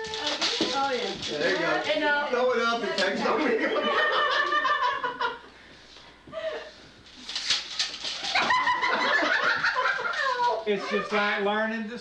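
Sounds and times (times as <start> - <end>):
people talking: 0.0 - 4.2, 10.1 - 12.0
burst of laughter: 8.2 - 10.6.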